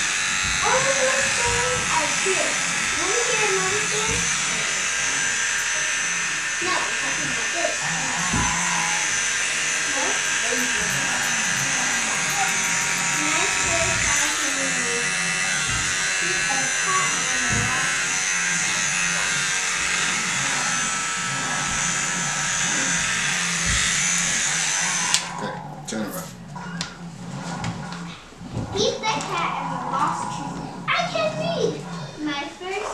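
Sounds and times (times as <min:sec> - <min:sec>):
electric hair clippers running: 0:00.0 - 0:25.8.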